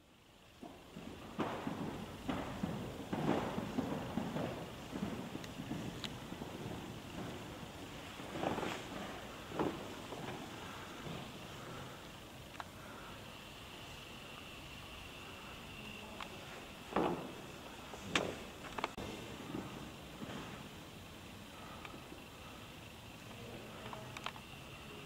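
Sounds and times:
echoing footsteps: 0:00.4 - 0:22.5
echoing knocks: 0:00.6 - 0:11.8.

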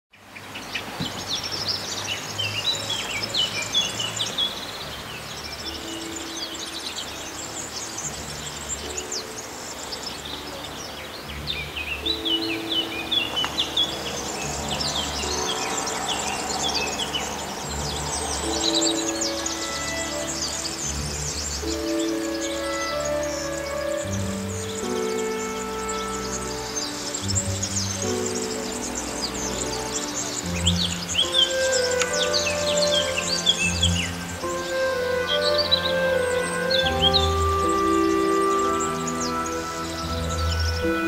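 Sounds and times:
small birds chirping: 0:00.1 - 0:41.0
soft music of held low notes: 0:00.2 - 0:41.0.

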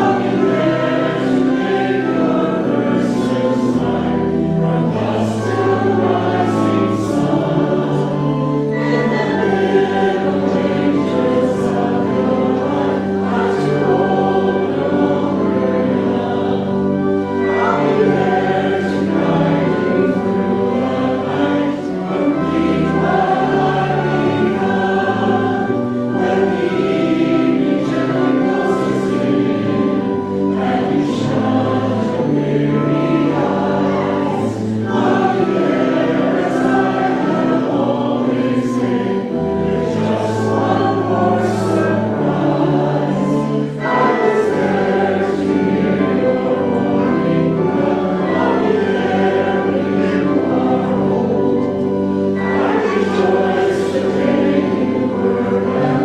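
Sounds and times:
congregation singing a hymn: 0:00.0 - 0:56.0
low sustained accompaniment: 0:00.0 - 0:56.0.

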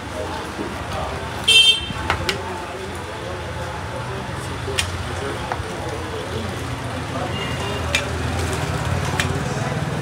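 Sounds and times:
faint voices: 0:00.0 - 0:10.0
traffic hum: 0:00.0 - 0:10.0.

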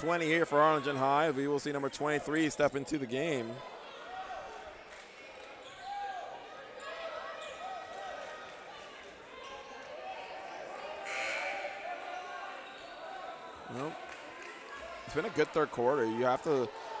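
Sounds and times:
voices in a hall: 0:00.0 - 0:17.0.

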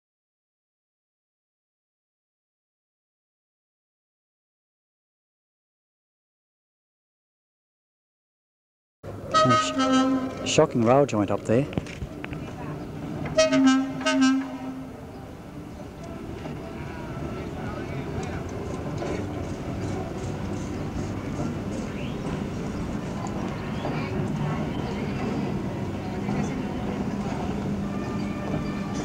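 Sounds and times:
railcar rumbling on track: 0:09.1 - 0:29.0
wheels clicking on rails: 0:09.2 - 0:14.2, 0:15.1 - 0:29.0
train horn toots: 0:09.3 - 0:10.6, 0:13.3 - 0:15.0.

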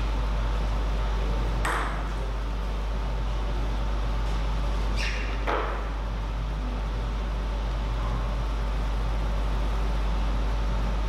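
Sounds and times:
electrical hum: 0:00.0 - 0:11.0
table tennis ball bouncing: 0:01.6 - 0:02.0.

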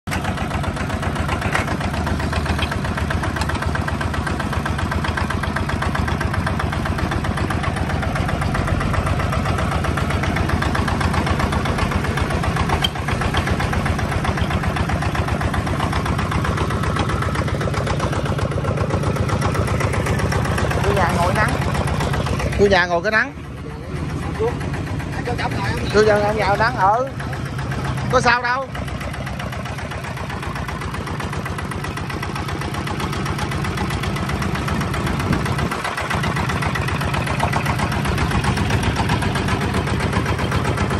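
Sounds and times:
diesel tiller engine chugging: 0:00.0 - 0:40.9.

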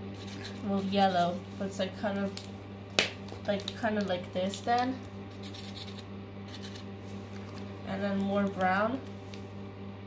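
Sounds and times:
steady low hum: 0:00.0 - 0:10.0
marker scratching on cardboard: 0:05.3 - 0:06.8.

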